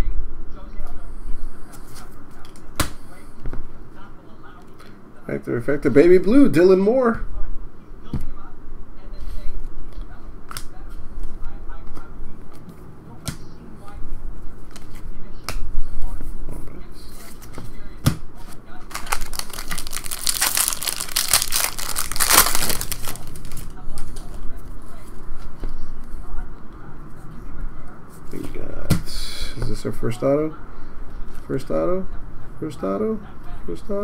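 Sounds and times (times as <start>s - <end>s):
foil wrapper tearing and crinkling: 18.9s - 23.8s.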